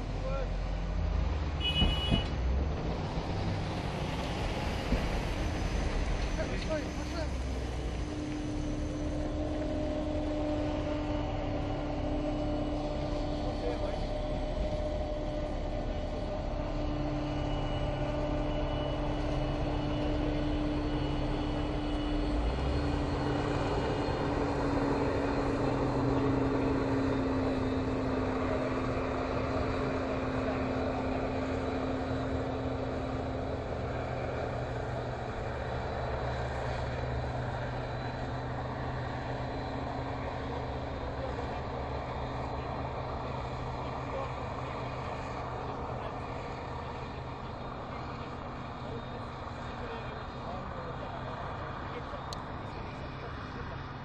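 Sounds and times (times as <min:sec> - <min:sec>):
tractor engine running: 0:01.8 - 0:54.0.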